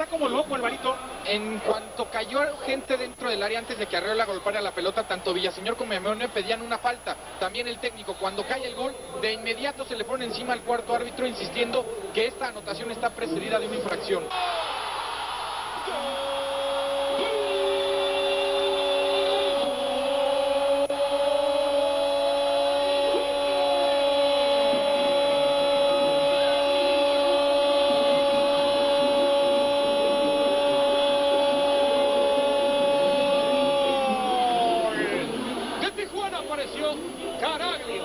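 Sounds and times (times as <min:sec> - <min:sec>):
stadium crowd cheering: 0:14.3 - 0:36.0
commentator's long goal cry: 0:15.9 - 0:35.3.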